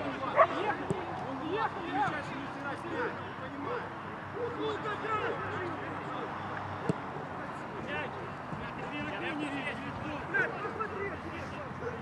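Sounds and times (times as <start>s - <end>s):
footballers shouting: 0.0s - 12.0s.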